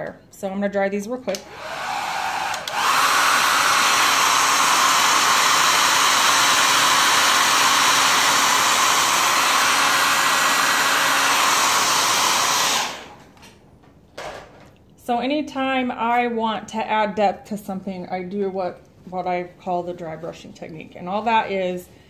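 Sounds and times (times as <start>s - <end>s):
hair dryer blowing: 1.2s - 13.4s.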